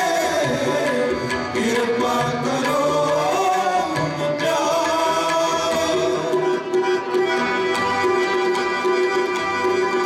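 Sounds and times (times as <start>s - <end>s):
harmonium notes: 0.0s - 10.0s
tabla rhythm: 0.0s - 10.0s.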